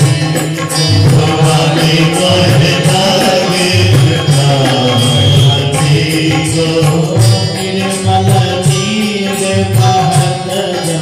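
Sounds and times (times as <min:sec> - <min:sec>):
devotional singing: 0:00.0 - 0:11.0
steady percussion beat: 0:00.0 - 0:11.0.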